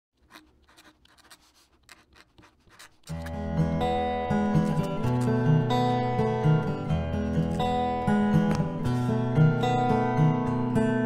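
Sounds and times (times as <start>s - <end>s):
pen nib scratching on paper: 0.2s - 3.4s.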